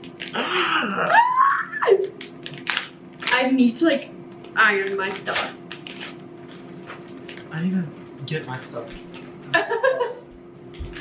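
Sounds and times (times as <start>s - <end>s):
man and woman laughing: 9.5s - 10.3s.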